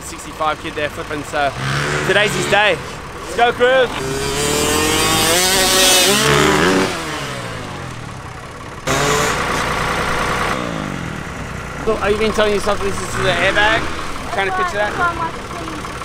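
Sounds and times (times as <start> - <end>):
dirt bike engine revving: 0.7 - 16.0.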